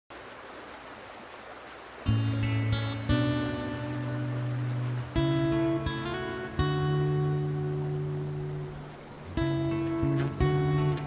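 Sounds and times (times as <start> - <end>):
river water rushing: 0.1 - 11.0
acoustic guitar chords: 2.1 - 11.0.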